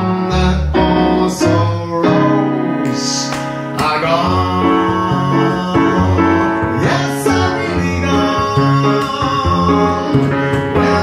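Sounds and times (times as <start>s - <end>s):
piano chords: 0.0s - 11.0s
plucked double bass: 3.8s - 11.0s.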